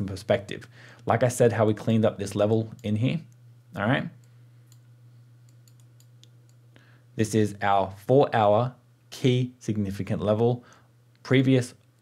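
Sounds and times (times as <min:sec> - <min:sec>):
low steady hum: 0:00.0 - 0:12.0
faint computer mouse clicks: 0:04.2 - 0:06.6.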